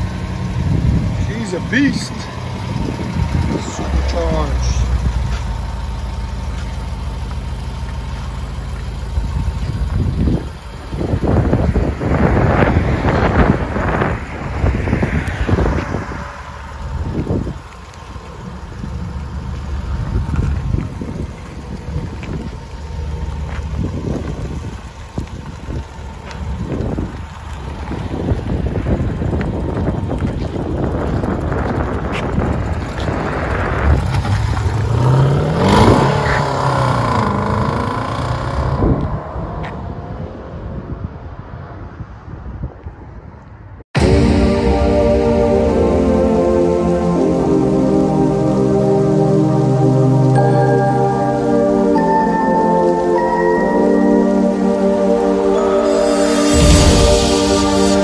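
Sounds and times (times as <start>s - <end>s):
car engine revving and accelerating: 0.0s - 18.0s, 30.9s - 40.0s, 44.0s - 58.0s.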